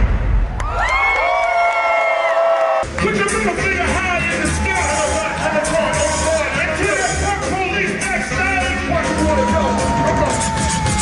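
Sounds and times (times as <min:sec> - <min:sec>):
crowd cheering: 0:00.0 - 0:11.0
music beat: 0:02.8 - 0:11.0.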